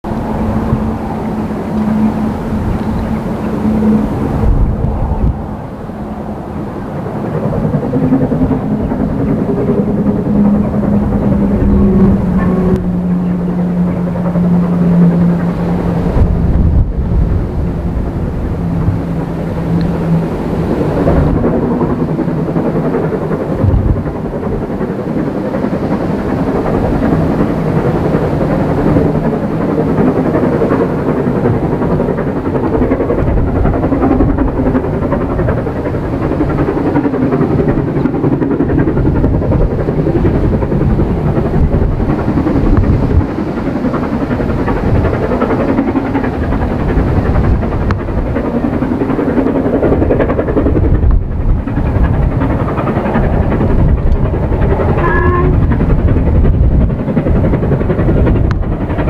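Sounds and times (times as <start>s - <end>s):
wind on microphone: 0.0s - 59.0s
steam locomotive exhaust rumble: 0.1s - 59.0s.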